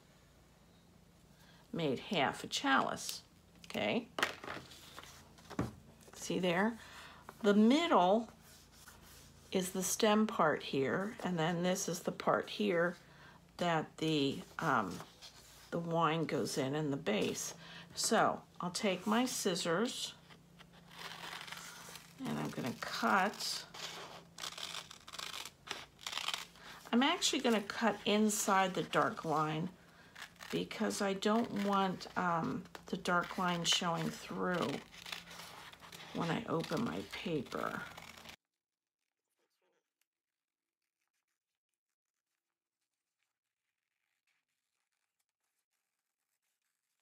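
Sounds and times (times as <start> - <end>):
scissors cutting paper: 20.9 - 38.4.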